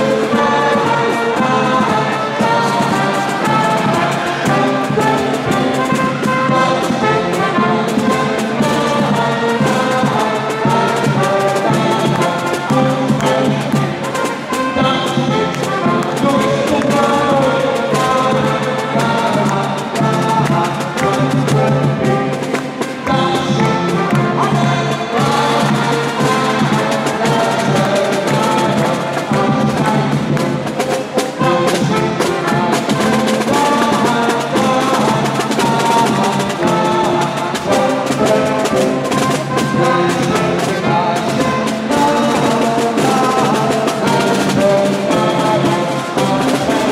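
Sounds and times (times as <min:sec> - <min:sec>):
steady drum beat: 0:00.0 - 0:46.9
street brass band playing: 0:00.0 - 0:46.9.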